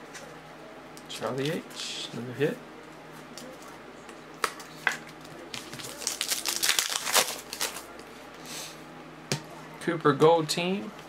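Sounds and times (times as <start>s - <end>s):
foil wrappers crinkling: 5.2s - 7.9s.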